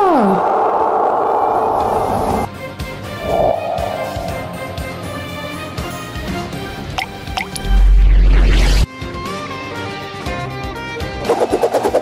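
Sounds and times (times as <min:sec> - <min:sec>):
background music: 0:02.5 - 0:08.3, 0:08.9 - 0:12.0
upward-sliding cartoon bloops: 0:03.2 - 0:05.5.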